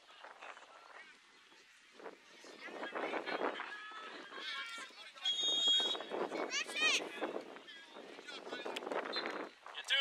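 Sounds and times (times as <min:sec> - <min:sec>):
voices of players and spectators: 0:00.0 - 0:10.0
referee's whistle blast: 0:05.2 - 0:06.1.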